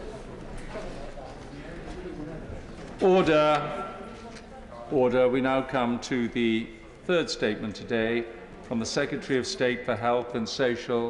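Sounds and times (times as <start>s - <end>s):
faint footsteps and shuffling: 0.0s - 4.9s
murmur of conversation: 0.0s - 11.0s.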